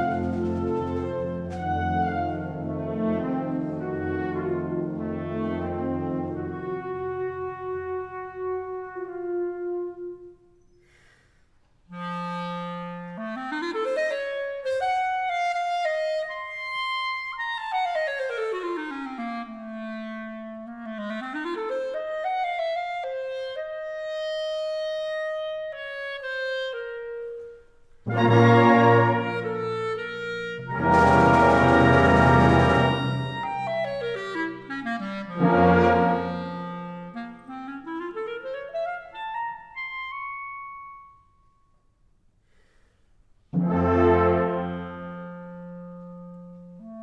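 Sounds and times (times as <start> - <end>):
solo clarinet cadenza: 0.0 - 11.2, 11.8 - 41.4, 43.6 - 47.0
wind band sustained chords: 28.1 - 34.2, 35.2 - 37.4, 43.6 - 45.6.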